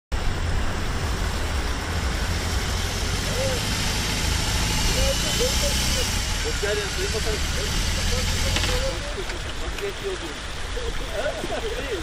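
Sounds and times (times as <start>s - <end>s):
motorcycle engine rumbling: 0.1s - 12.0s.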